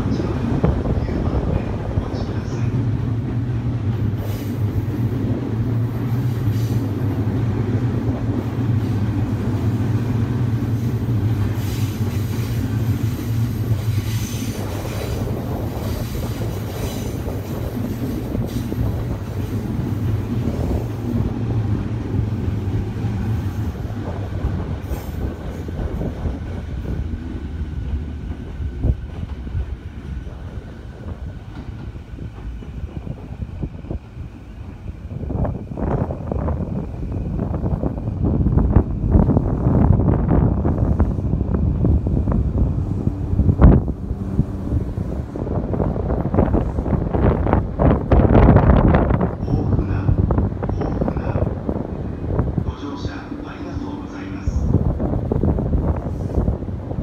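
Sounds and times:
steady low train drone: 0:00.0 - 0:57.0
train wheels clacking over rails: 0:01.8 - 0:33.4.

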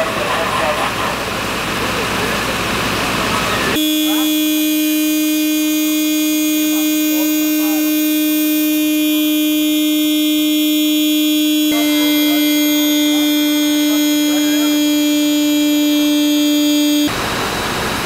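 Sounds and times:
broad engine-like noise: 0:00.0 - 0:18.0
steady machine hum: 0:01.2 - 0:18.0.

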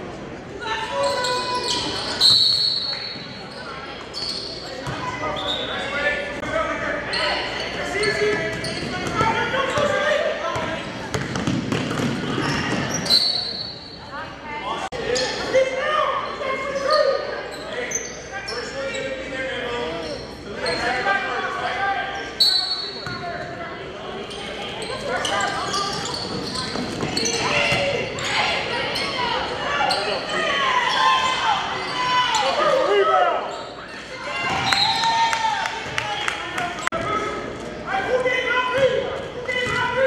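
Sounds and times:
players and spectators calling out: 0:00.4 - 0:11.2, 0:12.0 - 0:40.0
basketball bouncing on wooden court: 0:10.6 - 0:13.0.

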